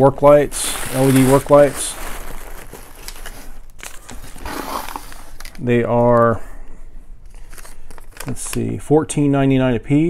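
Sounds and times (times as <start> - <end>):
plastic packing crinkling: 0.0 - 6.4, 7.2 - 8.7.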